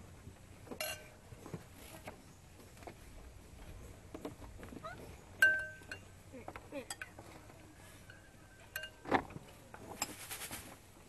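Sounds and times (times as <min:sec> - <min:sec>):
tableware clink: 0:00.8 - 0:01.2, 0:05.4 - 0:06.1, 0:08.7 - 0:09.1.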